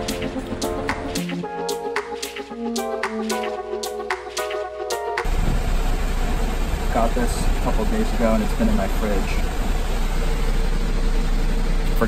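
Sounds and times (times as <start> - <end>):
music: 0.0 - 5.3
bus engine and road rumble: 5.2 - 12.0.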